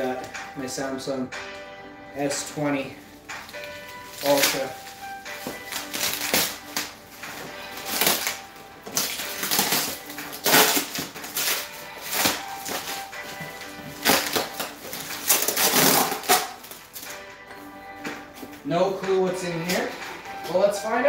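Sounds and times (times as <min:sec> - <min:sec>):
background music: 0:00.0 - 0:21.0
plastic packaging crinkling: 0:02.8 - 0:17.2.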